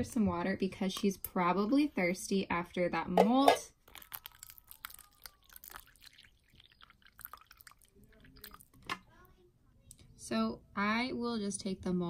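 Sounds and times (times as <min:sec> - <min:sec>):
water trickling into plastic dish: 0:03.8 - 0:09.2.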